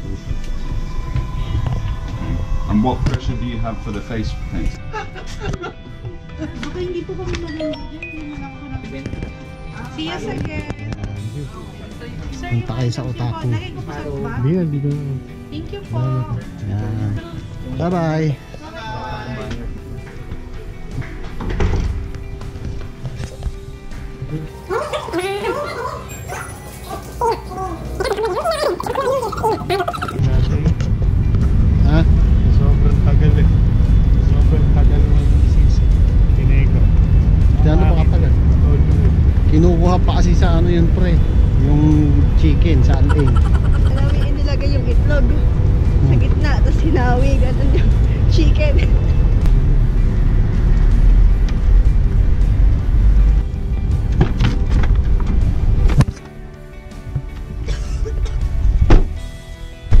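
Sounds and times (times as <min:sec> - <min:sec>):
music: 0:00.0 - 1:00.0
traffic rumble: 0:19.4 - 0:56.2
voices: 0:24.3 - 0:30.8, 0:37.5 - 0:45.4.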